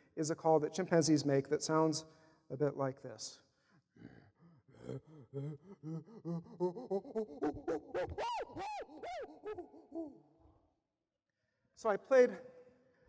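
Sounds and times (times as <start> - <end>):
chimpanzee pant hoot: 3.9 - 10.5
chimpanzee screams: 7.4 - 10.2.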